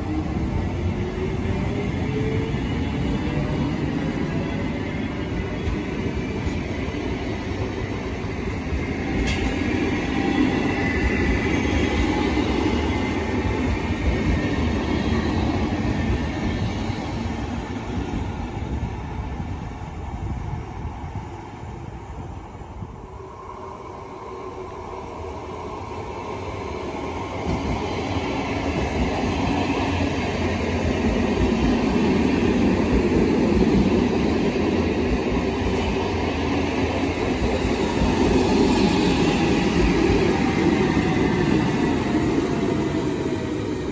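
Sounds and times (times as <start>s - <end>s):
wheel and rail noise: 0.0s - 17.6s
electric train approaching: 0.0s - 43.9s.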